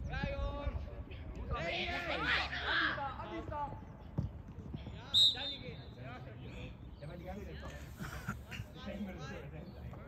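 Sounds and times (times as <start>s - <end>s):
distant players' voices: 0.6s - 10.0s
referee's whistle blast: 5.2s - 5.6s.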